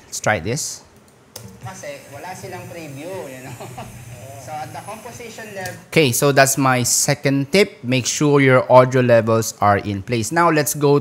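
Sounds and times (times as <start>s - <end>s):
man talking: 0.0s - 0.9s, 1.6s - 11.0s.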